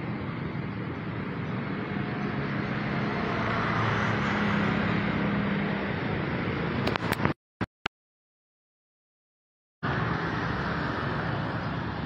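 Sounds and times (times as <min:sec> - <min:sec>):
passing vehicles rumbling: 0:00.0 - 0:07.4, 0:09.8 - 0:12.0.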